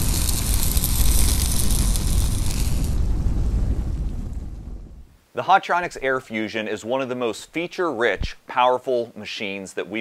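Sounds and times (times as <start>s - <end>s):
rumbling sizzling burst: 0.0s - 6.2s
high hiss: 0.0s - 8.7s.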